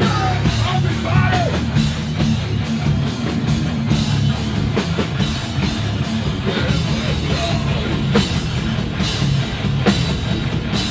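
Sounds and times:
punk band playing live: 0:00.0 - 0:10.9.

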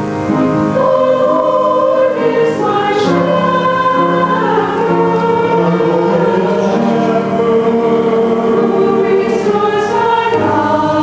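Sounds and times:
mixed choir singing: 0:00.0 - 0:11.0
piano accompaniment: 0:00.0 - 0:11.0.

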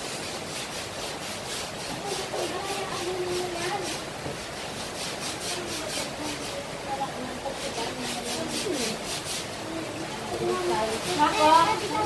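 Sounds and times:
stiff brush scrubbing wet cement: 0:00.0 - 0:12.0.

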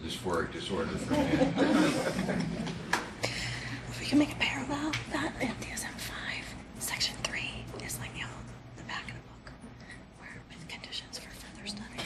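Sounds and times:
low steady hum: 0:00.0 - 0:12.0
person whispering: 0:05.6 - 0:09.5, 0:10.2 - 0:12.0.

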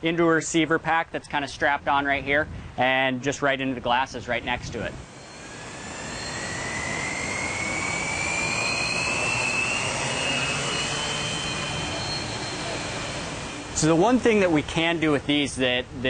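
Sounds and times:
faint rising whine: 0:04.2 - 0:16.0
drone propellers whirring: 0:04.6 - 0:15.4.

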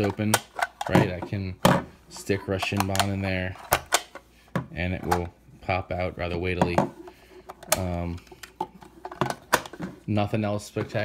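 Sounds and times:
plastic cover snapping shut: 0:02.7 - 0:04.2.

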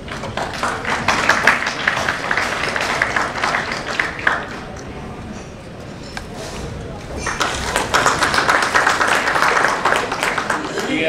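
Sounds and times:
audience applauding: 0:00.0 - 0:04.8, 0:07.2 - 0:11.0.

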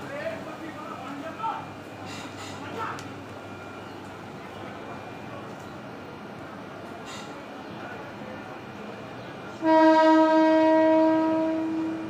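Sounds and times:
train rolling on track: 0:00.0 - 0:12.0.

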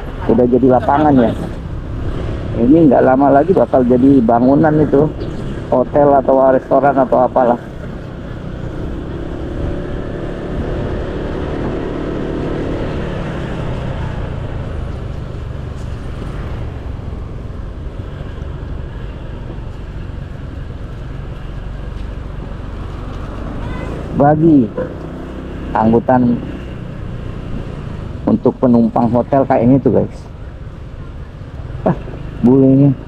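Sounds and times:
road and traffic noise: 0:00.0 - 0:33.0.

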